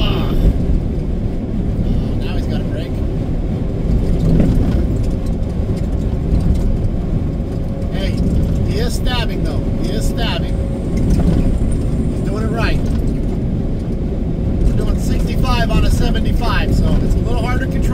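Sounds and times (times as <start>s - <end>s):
truck road and engine drone: 0.0s - 17.9s.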